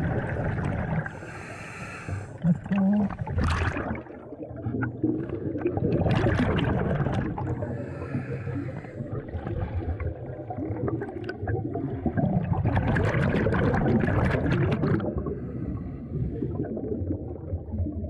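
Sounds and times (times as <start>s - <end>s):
exhaled bubbles gurgling: 0.0s - 18.0s
underwater low rumble: 0.0s - 18.0s.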